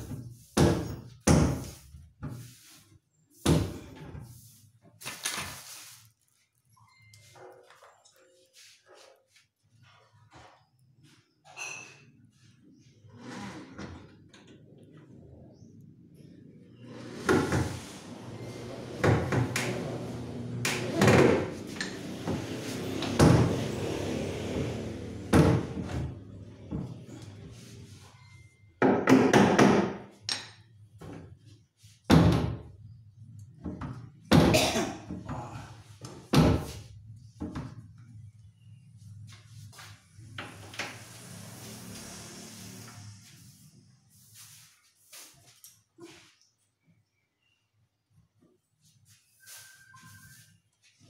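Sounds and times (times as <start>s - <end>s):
scraping rub against plywood: 1.6s - 3.4s, 16.9s - 25.3s.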